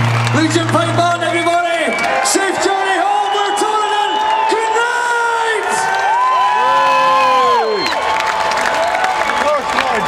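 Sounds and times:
large crowd cheering: 0.0s - 10.0s.

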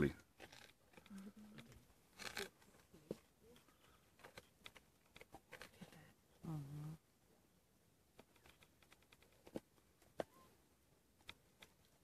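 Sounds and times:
hyena tearing and chewing meat: 0.4s - 2.6s.

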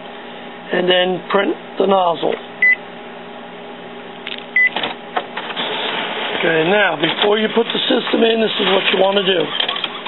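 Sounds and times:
printer mechanism clicks and whir: 4.3s - 10.0s
printer control panel beep: 4.6s - 4.8s.

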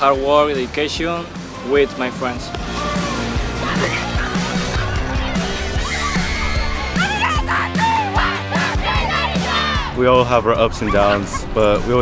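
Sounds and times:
girls shouting a cheer: 3.8s - 10.0s.

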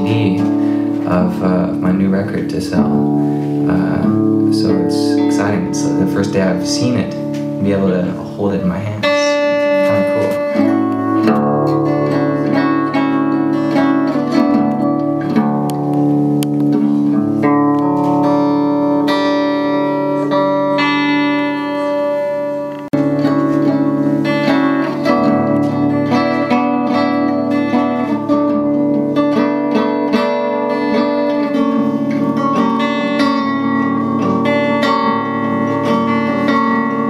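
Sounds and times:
fingerpicked acoustic guitar: 0.0s - 37.0s.

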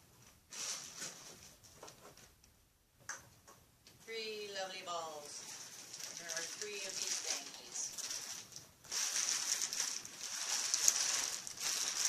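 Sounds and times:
bubble wrap crinkling: 0.5s - 1.9s, 4.7s - 12.0s.

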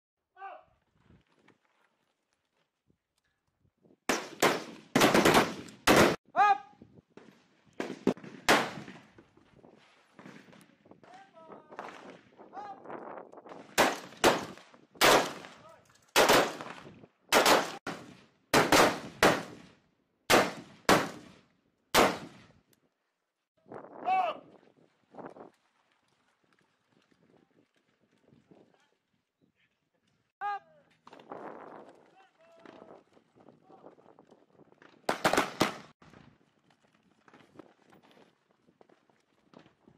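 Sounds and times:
rifle shots: 4.1s - 6.2s, 7.8s - 9.0s, 13.7s - 15.6s, 16.2s - 19.7s, 20.3s - 22.5s, 35.1s - 35.9s.

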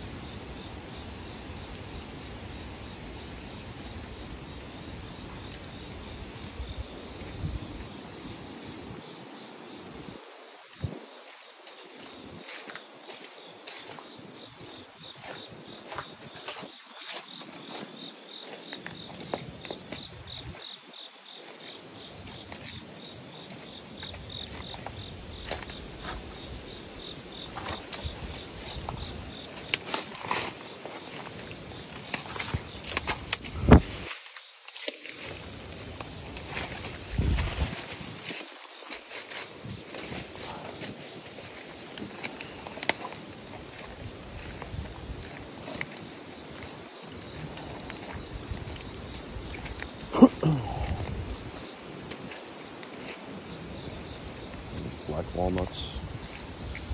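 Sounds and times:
insect chirping: 0.0s - 56.9s
footsteps crunching through leaves: 10.7s - 26.5s, 27.4s - 55.1s
twigs crackling: 27.4s - 56.9s.

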